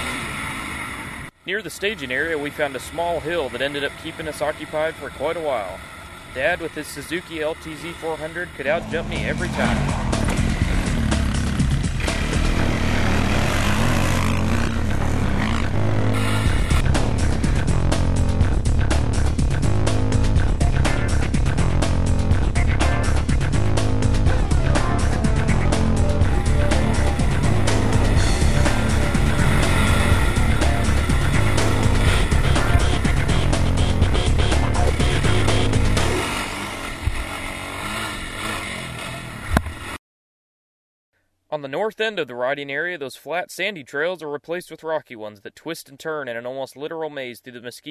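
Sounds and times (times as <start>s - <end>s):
atv engine revving: 0.0s - 40.0s
background music with beat: 8.7s - 36.2s.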